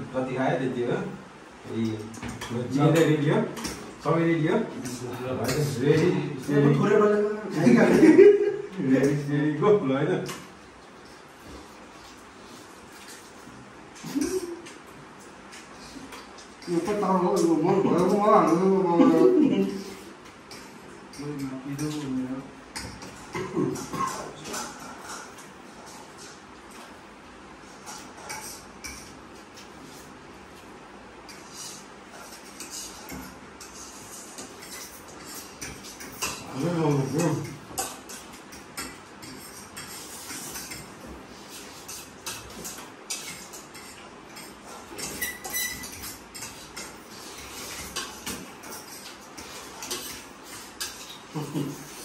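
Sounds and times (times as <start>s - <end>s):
cutlery clinking on plates: 31.3s - 52.0s.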